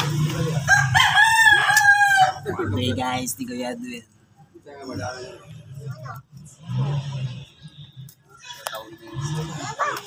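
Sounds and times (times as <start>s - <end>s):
rooster crowing: 0.6s - 2.5s.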